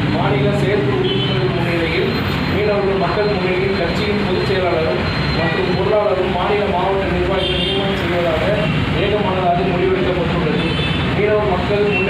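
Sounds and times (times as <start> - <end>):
man reading aloud: 0.0 - 12.0
steady background hum: 0.0 - 12.0.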